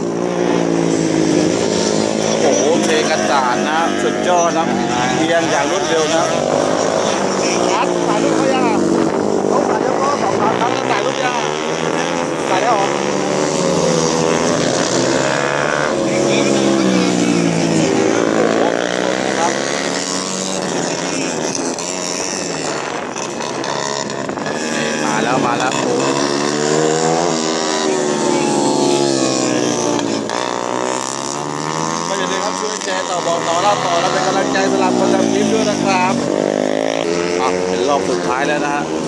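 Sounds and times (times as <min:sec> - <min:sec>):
racing motorcycles revving: 0:00.0 - 0:39.0.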